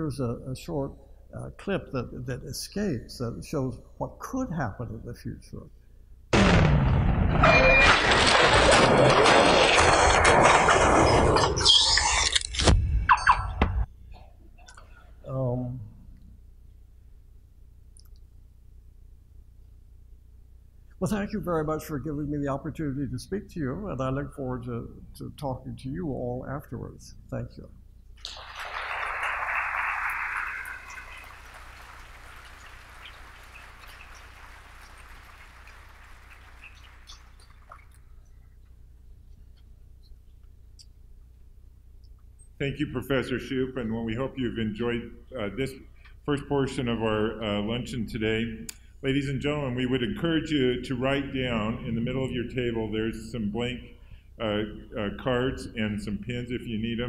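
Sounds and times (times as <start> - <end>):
mechanical clattering and whirring: 7.3 - 12.8
falling squeal: 7.4 - 8.5, 11.0 - 12.3
audience applause: 28.2 - 37.9.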